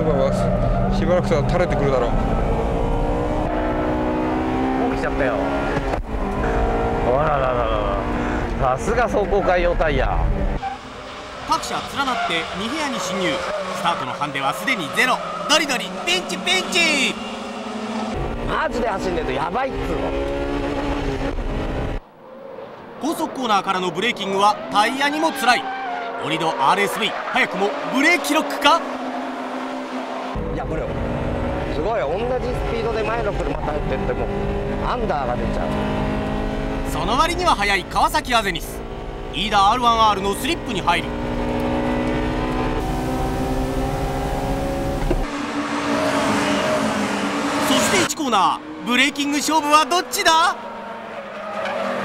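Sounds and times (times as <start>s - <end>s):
car engine accelerating hard: 0.0s - 22.0s, 27.4s - 52.0s.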